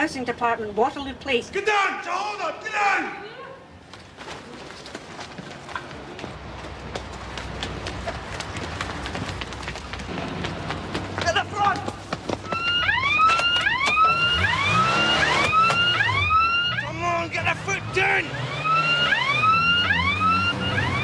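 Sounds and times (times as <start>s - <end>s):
siren yelping: 12.5s - 21.0s.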